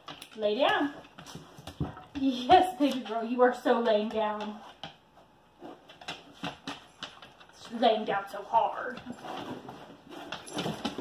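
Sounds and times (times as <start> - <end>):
dog moving and rustling: 8.9 - 11.0.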